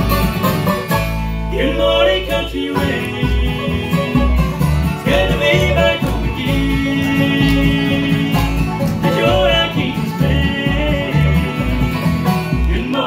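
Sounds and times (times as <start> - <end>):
strummed acoustic guitar: 0.0 - 13.0
upright bass pulsing: 0.0 - 13.0
voices singing in harmony: 1.5 - 13.0.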